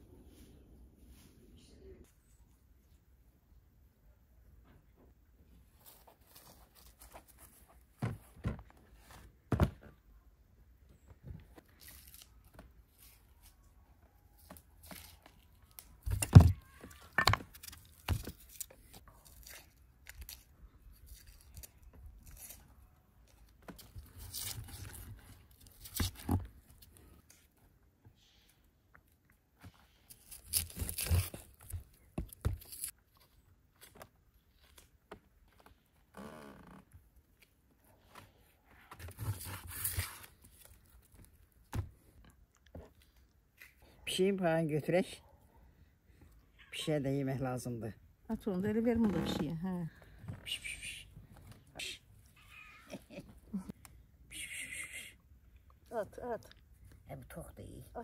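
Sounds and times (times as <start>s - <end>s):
onion skins crackling and tearing: 11.6s - 13.6s, 14.5s - 26.4s, 29.9s - 33.0s.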